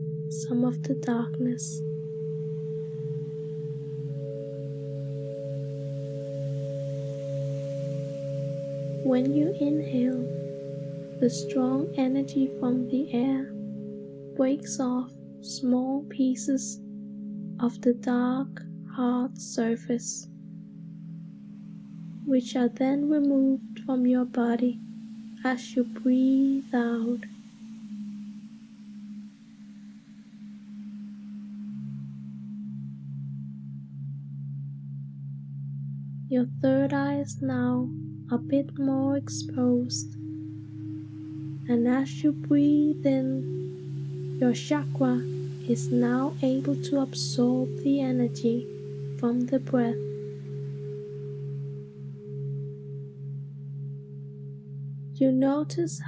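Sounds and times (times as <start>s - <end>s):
meditation music drone: 0.0s - 56.0s.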